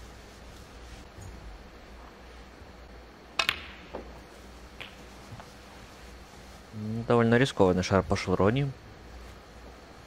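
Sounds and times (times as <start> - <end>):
snooker balls clicking: 3.3 - 4.2, 4.8 - 5.5.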